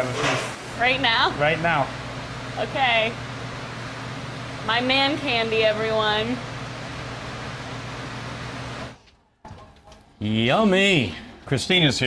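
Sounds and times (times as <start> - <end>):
kitchen fan hum and hiss: 0.0 - 12.0.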